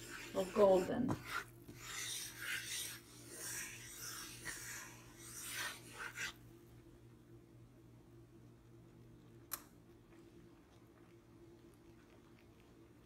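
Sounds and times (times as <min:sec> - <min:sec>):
wooden spoon scraping a frying pan: 0:00.0 - 0:06.4.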